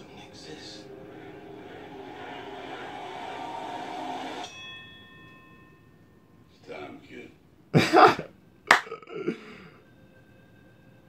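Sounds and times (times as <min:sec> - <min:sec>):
man laughing: 0:07.8 - 0:09.6.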